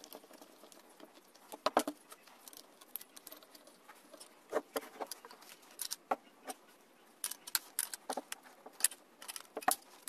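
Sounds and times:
small metallic clicks and rattling: 0.0s - 4.4s, 5.0s - 6.2s, 7.2s - 10.0s.

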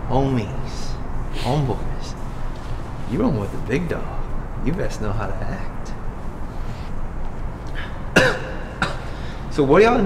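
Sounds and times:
man coughing: 7.8s - 9.4s.

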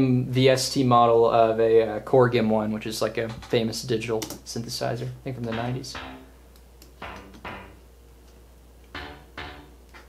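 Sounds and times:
synth bass notes: 7.0s - 7.9s.

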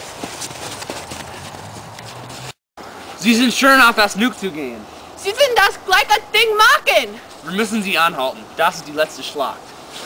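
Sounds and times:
footsteps running through snow: 0.0s - 2.6s.

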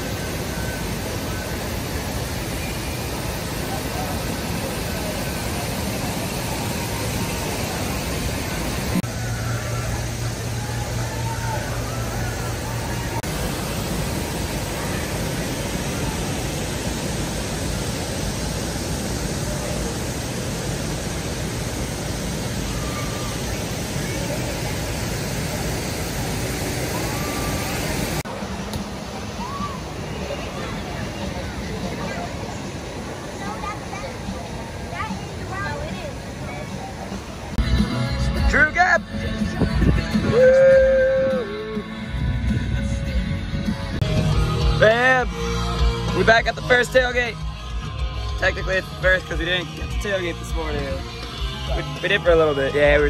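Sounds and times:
distant voices: 0.0s - 37.6s
rushing water: 0.0s - 37.6s.

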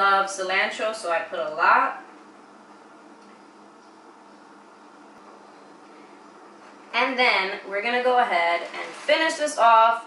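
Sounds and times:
low hum: 0.0s - 8.9s.

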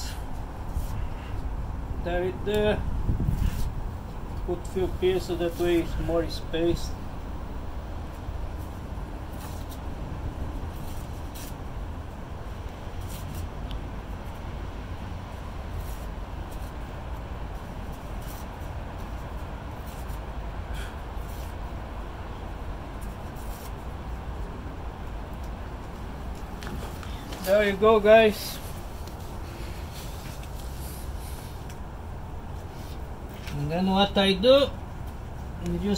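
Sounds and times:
low outdoor rumble: 0.0s - 35.9s
paper and soil rustling: 3.3s - 6.9s, 26.3s - 31.7s.

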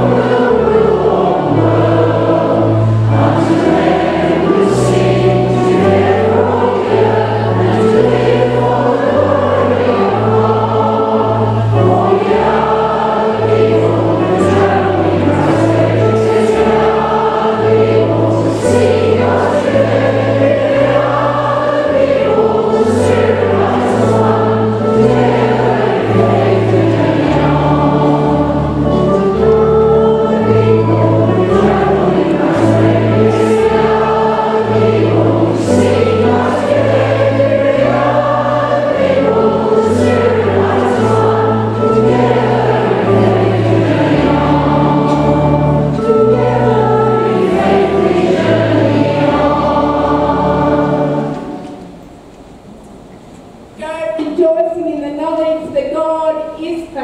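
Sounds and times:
instrumental accompaniment with bass: 0.0s - 51.9s
congregation singing: 0.0s - 53.8s.

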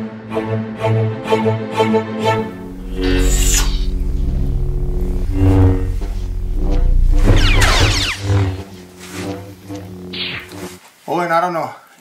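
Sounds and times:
lightsaber electric hum: 2.4s - 10.8s.

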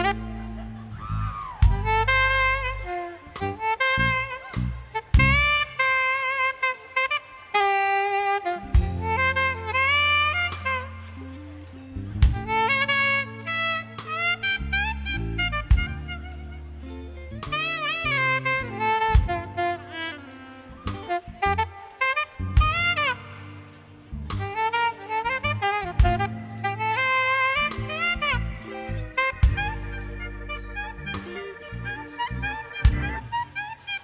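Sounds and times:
bass notes: 0.0s - 6.0s, 8.6s - 34.0s
saxophone solo: 0.0s - 34.0s.

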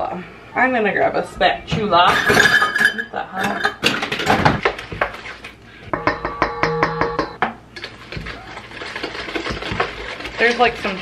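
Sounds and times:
ringing taps: 5.9s - 7.5s
spatula scraping mixing bowl: 7.8s - 11.0s.

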